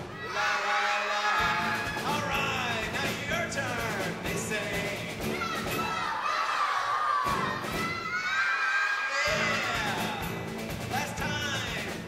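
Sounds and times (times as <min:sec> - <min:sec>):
children singing and shouting: 0:00.0 - 0:10.3
acoustic guitar music: 0:01.4 - 0:06.0, 0:09.3 - 0:12.0.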